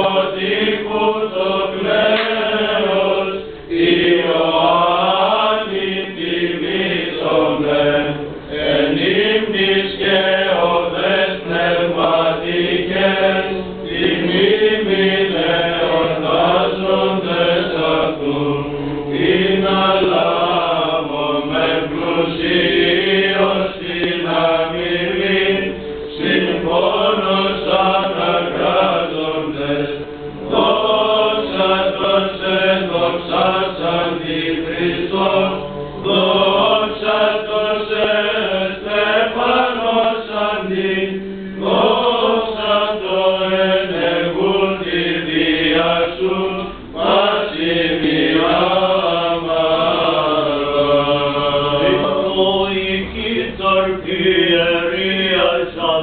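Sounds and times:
chant melody: 0:00.0 - 0:56.0.

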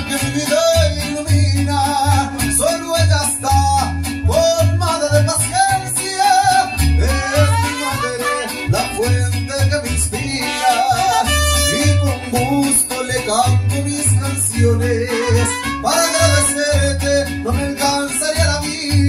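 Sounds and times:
deep plucked bass line: 0:00.0 - 0:19.0
mariachi band playing: 0:00.0 - 0:19.0
person singing: 0:00.0 - 0:19.0
strummed guitars: 0:00.0 - 0:19.0.

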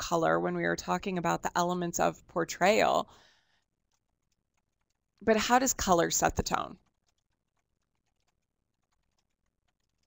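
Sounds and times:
faint irregular clicks: 0:03.1 - 0:05.3, 0:06.4 - 0:10.0.

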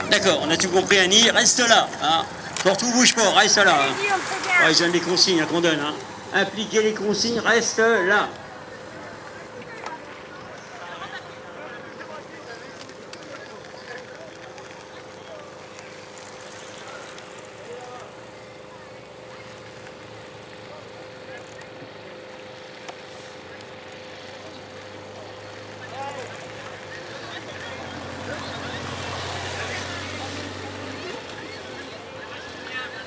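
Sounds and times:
vehicle engine hum: 0:00.0 - 0:33.0.

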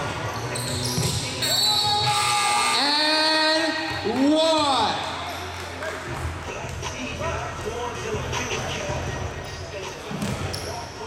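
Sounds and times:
basketball shoes squeaking: 0:00.0 - 0:02.4, 0:07.6 - 0:11.0.

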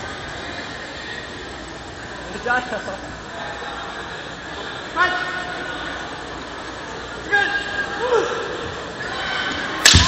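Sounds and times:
crowded sports hall noise: 0:00.0 - 0:10.0.

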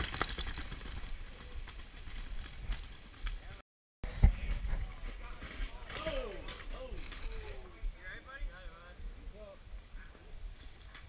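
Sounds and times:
bike rattling: 0:00.0 - 0:07.8.

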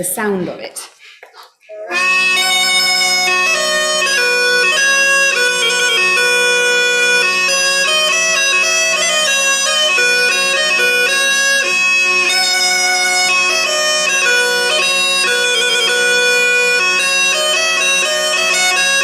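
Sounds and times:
bagpipe melody over drones: 0:01.7 - 0:19.0.

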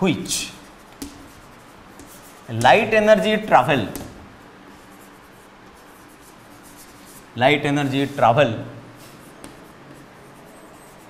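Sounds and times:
chalk writing on chalkboard: 0:00.0 - 0:08.2, 0:09.0 - 0:11.0.

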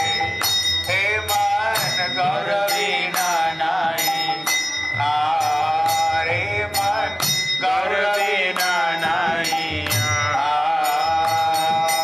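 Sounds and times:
person singing devotional melody: 0:00.0 - 0:12.0
small hand cymbals ringing: 0:00.0 - 0:12.0.

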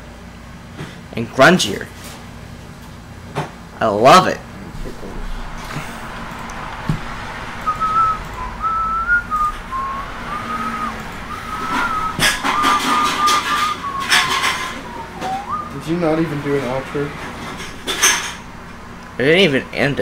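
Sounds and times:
person whistling a tune: 0:07.6 - 0:15.9.

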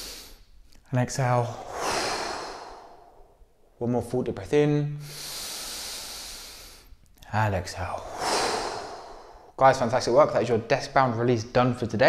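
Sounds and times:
man breathing in deeply: 0:00.0 - 0:00.5, 0:01.4 - 0:03.4, 0:05.0 - 0:07.0, 0:08.0 - 0:09.6.

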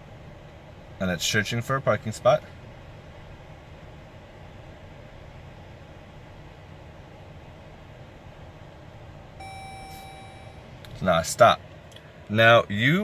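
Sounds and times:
car cabin hum: 0:00.0 - 0:13.0
dashboard chime: 0:09.4 - 0:10.7.

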